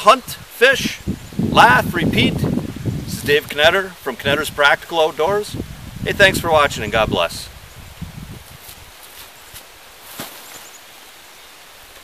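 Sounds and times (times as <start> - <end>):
footfalls on grass and dry leaves: 8.4 - 11.1
soft rustling: 8.4 - 11.1.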